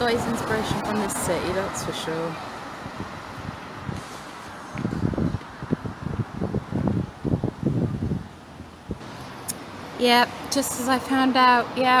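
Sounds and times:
wind buffeting microphone: 0.0s - 10.8s
outdoor street background: 0.0s - 12.0s.

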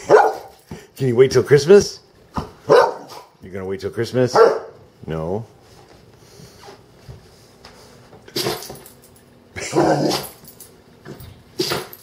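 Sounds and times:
dog barking: 0.0s - 0.6s, 2.6s - 3.3s, 4.3s - 4.8s.

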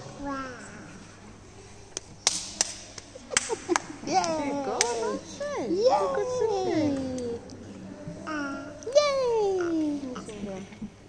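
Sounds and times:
sharp knocks with echo: 2.2s - 3.8s.

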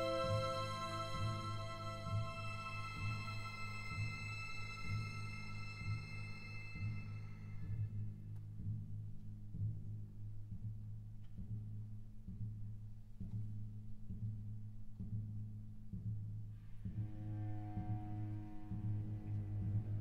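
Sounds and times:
high sustained tones: 0.0s - 7.9s
deep pulsing drone: 0.0s - 12.9s, 14.0s - 20.0s.

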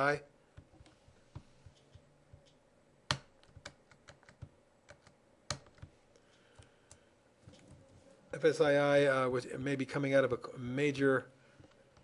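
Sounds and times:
keyboard typing: 1.6s - 5.9s.

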